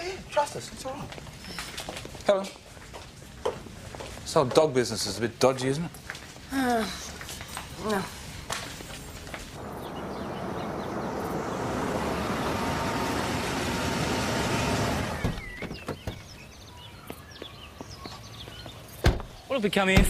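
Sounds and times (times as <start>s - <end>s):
motor vehicle noise: 7.3s - 19.5s.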